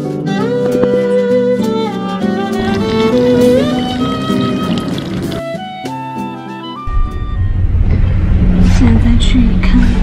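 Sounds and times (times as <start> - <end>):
music: 0.0 - 10.0
car interior rumble: 2.5 - 5.5, 6.9 - 10.0
woman speaking: 8.6 - 10.0.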